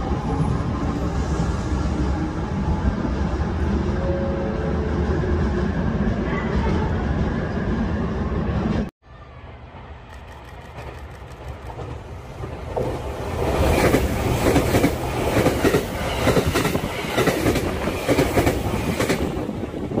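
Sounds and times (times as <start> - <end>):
train wheels clacking: 10.0 - 19.5.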